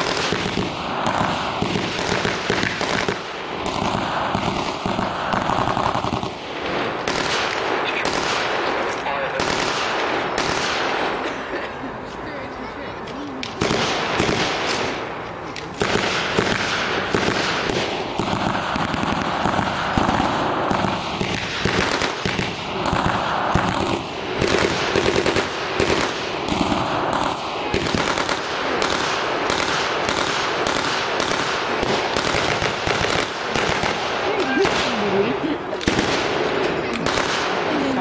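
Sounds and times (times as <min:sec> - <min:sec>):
rifle single shots: 0:00.0 - 0:11.3, 0:13.4 - 0:35.2, 0:35.8 - 0:38.0.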